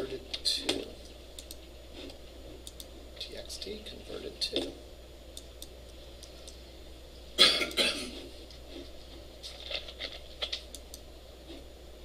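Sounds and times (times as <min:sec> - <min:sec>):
faint clicks: 0:01.0 - 0:01.6, 0:02.6 - 0:02.9
person coughing: 0:07.4 - 0:08.2.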